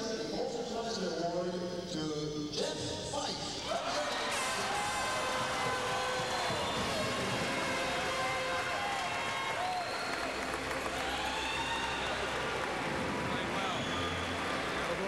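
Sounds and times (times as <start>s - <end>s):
man speaking over public address: 0.0s - 4.5s, 13.3s - 14.1s
crowd applause: 3.7s - 15.0s.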